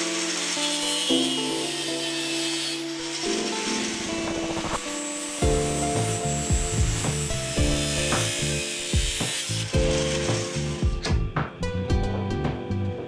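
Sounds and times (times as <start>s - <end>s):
steel grinding on abrasive disc: 0.0s - 11.5s
music with steady beat: 5.4s - 13.0s.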